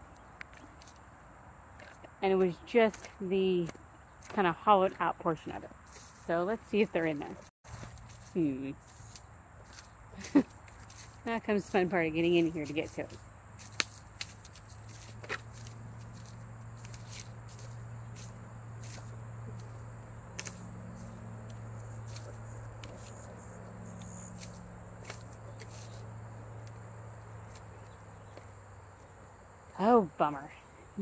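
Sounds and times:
steady low hum: 0.0s - 31.0s
footsteps through undergrowth: 2.8s - 29.4s.

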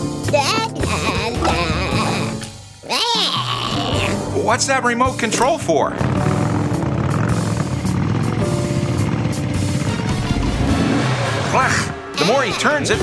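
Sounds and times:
background music: 0.0s - 13.0s
cartoon vehicle engine running: 5.9s - 13.0s.

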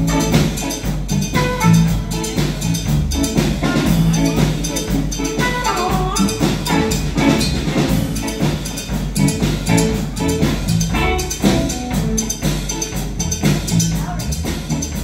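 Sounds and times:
trumpet line: 0.0s - 2.7s, 3.3s - 8.3s
drum kit steady beat: 0.0s - 15.0s
electric guitar: 0.0s - 15.0s.

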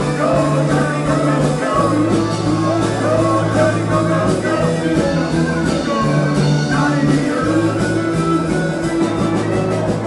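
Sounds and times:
electric guitar: 0.0s - 10.0s
rock and roll band playing: 0.0s - 10.0s.

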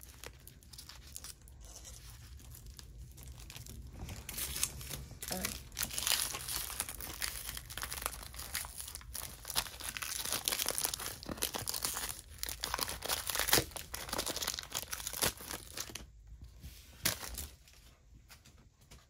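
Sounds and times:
foil wrapper crinkling and tearing: 0.0s - 16.1s, 16.9s - 17.6s.

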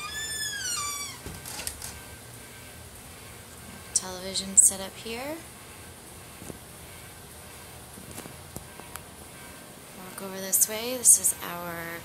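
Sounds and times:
door hinge squeaking: 0.0s - 2.0s.

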